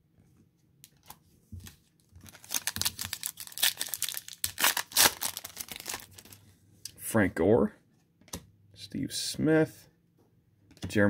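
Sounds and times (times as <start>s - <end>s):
plastic wrapper tearing and crinkling: 2.2s - 6.4s.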